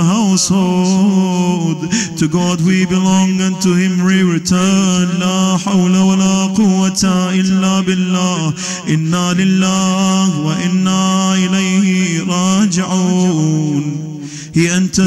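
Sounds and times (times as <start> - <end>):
man chanting a lament: 0.0 - 15.0.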